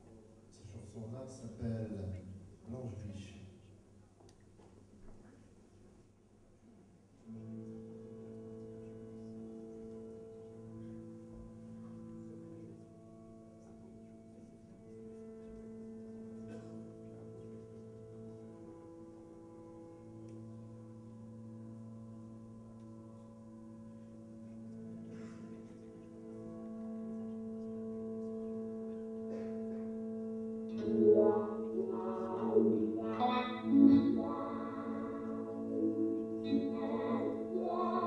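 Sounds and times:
guitar drone: 7.3s - 38.0s.

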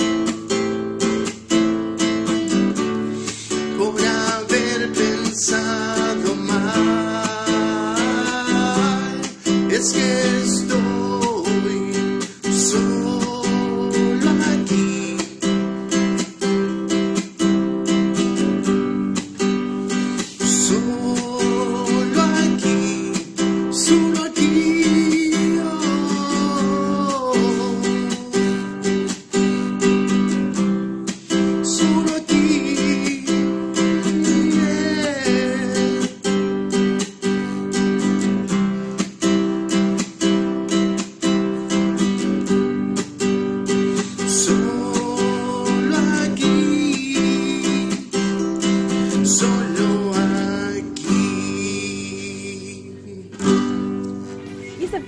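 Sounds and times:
man singing: 0.0s - 17.0s, 18.1s - 38.1s, 41.6s - 54.0s
acoustic guitar strumming: 0.0s - 55.0s.

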